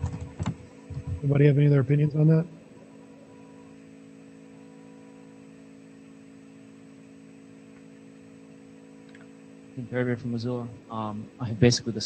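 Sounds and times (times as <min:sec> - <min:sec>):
faint electrical hum with hiss: 0:00.0 - 0:12.0.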